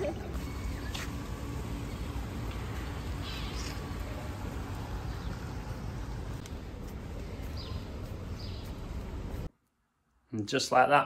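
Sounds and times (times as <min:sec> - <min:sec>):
low steady rumble: 0:00.1 - 0:09.5.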